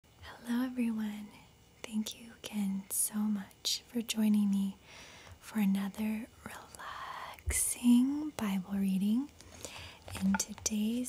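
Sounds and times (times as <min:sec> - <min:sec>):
woman speaking softly: 0:00.2 - 0:04.8, 0:05.4 - 0:09.3, 0:10.1 - 0:11.0.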